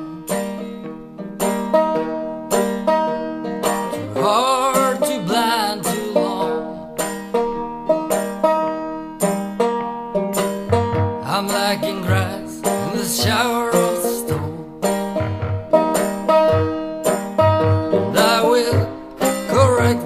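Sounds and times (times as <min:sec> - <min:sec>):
fingerpicked banjo: 0:00.0 - 0:20.0.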